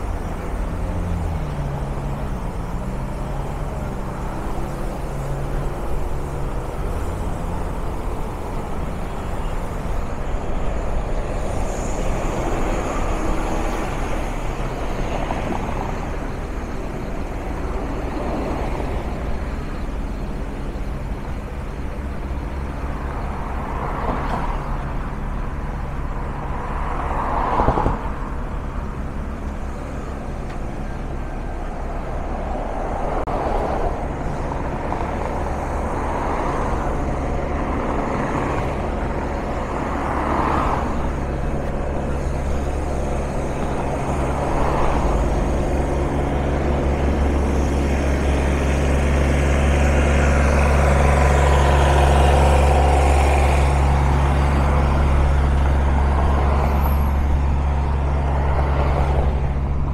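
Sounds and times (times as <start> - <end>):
city street traffic: 0.0 - 59.9
heavy vehicle engine droning: 0.0 - 59.9.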